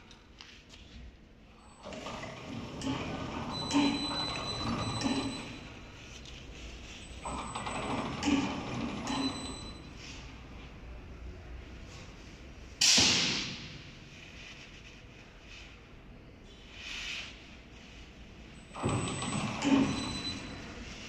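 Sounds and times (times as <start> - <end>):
machine rollers turning: 1.6 - 10.0, 18.6 - 21.0.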